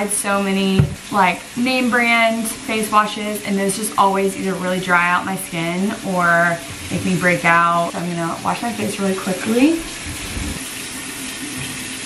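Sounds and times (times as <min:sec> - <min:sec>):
tap running into sink: 0:00.7 - 0:01.2, 0:06.5 - 0:07.2, 0:11.4 - 0:12.0
face being washed: 0:05.8 - 0:12.0.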